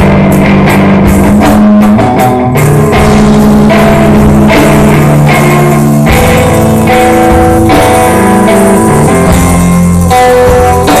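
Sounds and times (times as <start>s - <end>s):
drum kit: 0.0s - 11.0s
electric guitar low notes: 0.0s - 11.0s.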